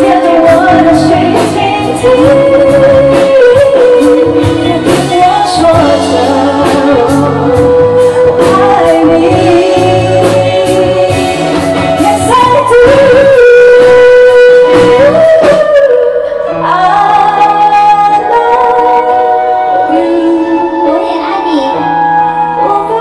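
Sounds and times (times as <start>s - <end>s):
steady drum beat: 0.0s - 15.9s
bass: 0.0s - 23.0s
live band playing: 0.0s - 23.0s
woman singing into microphone: 0.0s - 23.0s.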